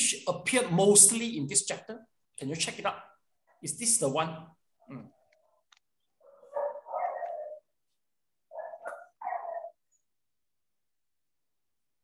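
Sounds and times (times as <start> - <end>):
dog barking: 6.2 - 7.7, 8.5 - 9.9.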